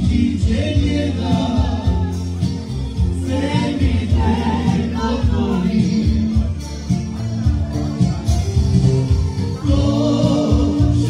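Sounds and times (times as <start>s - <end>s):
man singing: 0.0s - 6.9s, 9.5s - 11.0s
bass guitar: 0.0s - 11.0s
steady beat: 0.0s - 11.0s.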